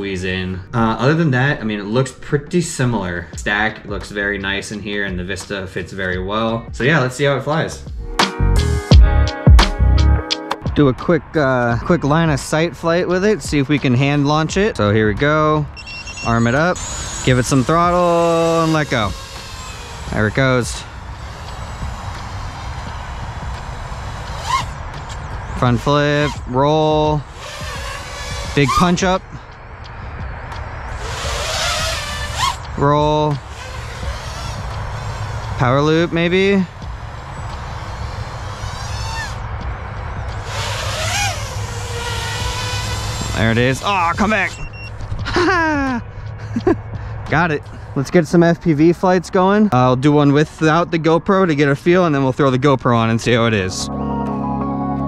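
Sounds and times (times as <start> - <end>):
distant drone motors whining: 15.1 - 48.0
man chuckling: 45.2 - 46.9.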